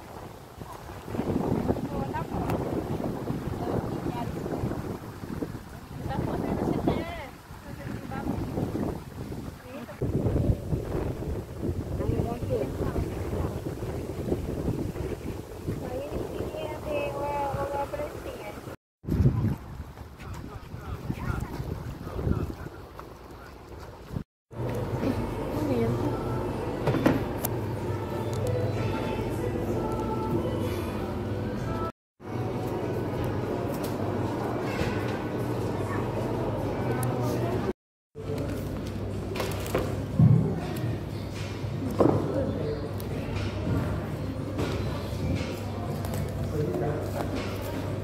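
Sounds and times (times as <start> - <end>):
wind buffeting microphone: 0.0 - 24.3.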